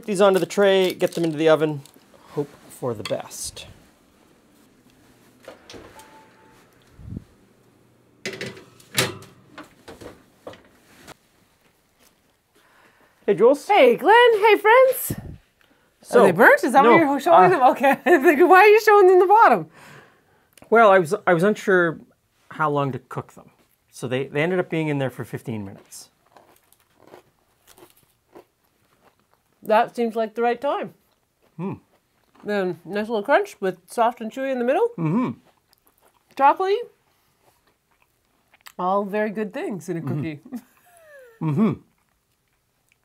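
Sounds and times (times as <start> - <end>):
oven door opening: 5.4 - 6.6, 8.2 - 10.8
baking sheet clattering on rack: 8.2 - 10.7
person chewing crunchy cookie: 25.8 - 29.6, 31.0 - 32.5, 35.1 - 36.4, 37.1 - 38.8, 41.9 - 43.0.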